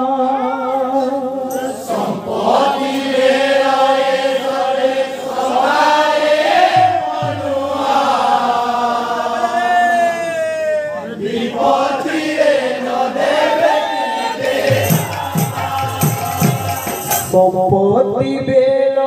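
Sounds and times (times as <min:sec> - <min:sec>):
men singing a devotional chant: 0:00.0 - 0:09.8, 0:11.1 - 0:19.0.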